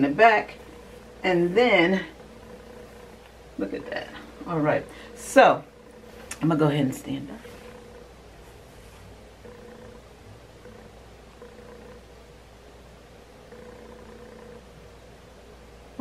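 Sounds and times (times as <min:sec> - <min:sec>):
faint intermittent humming tone: 0:00.0 - 0:16.0
faint low hum: 0:00.0 - 0:16.0.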